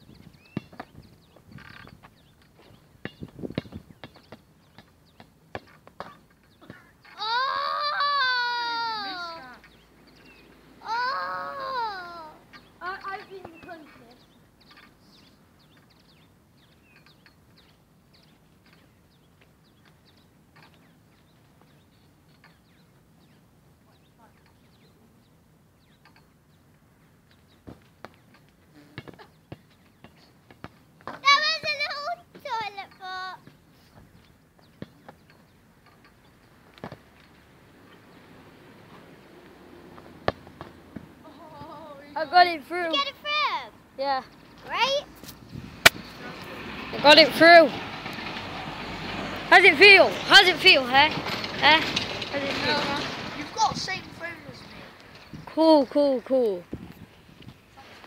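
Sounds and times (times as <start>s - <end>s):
child yelling high-pitched: 7.2s - 9.6s, 10.8s - 12.4s, 31.2s - 33.4s.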